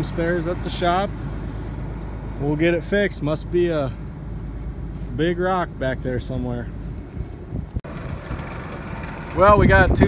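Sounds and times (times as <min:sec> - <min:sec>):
wind on microphone: 0:06.9 - 0:08.6, 0:09.5 - 0:10.0.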